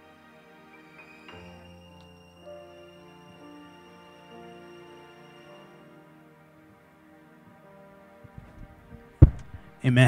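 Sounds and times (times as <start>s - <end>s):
microphone handling thump: 8.3s - 9.7s.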